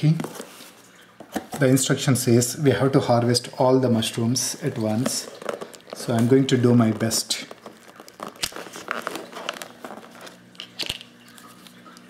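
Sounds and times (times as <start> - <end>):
mushroom crunching and tearing: 7.5 - 9.8.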